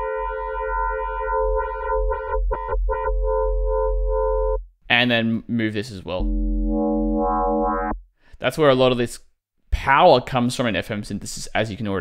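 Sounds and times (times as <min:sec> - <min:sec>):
synthesizer steady note: 0:00.0 - 0:04.6, 0:06.2 - 0:08.0.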